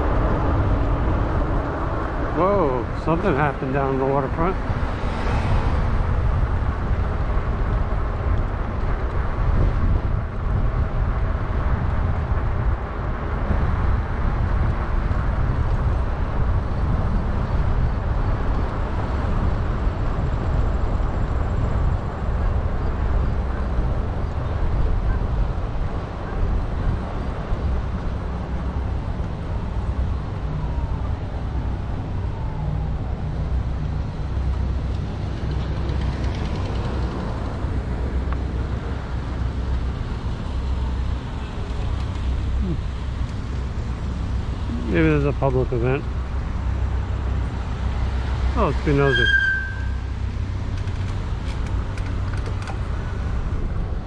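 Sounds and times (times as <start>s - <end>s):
wind rumbling on microphone: 0.0s - 54.0s
bike tyres on paved road: 4.6s - 44.7s, 46.1s - 54.0s.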